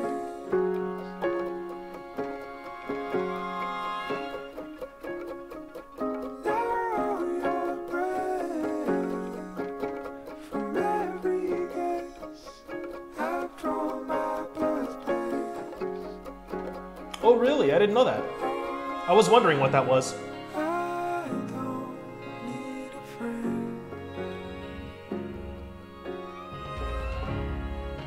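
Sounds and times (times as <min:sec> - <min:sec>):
plucked guitar: 0:00.0 - 0:28.0
man singing softly: 0:06.4 - 0:09.8, 0:10.5 - 0:16.2, 0:18.2 - 0:24.2.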